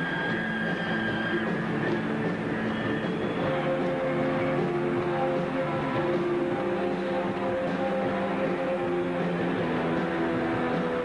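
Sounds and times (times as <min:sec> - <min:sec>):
live band holding a chord: 0:00.0 - 0:11.0.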